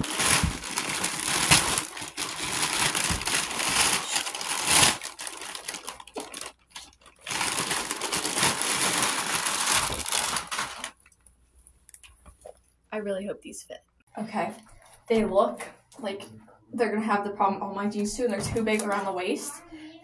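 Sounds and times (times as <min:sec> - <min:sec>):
plastic bag crinkling: 0:00.0 - 0:11.2.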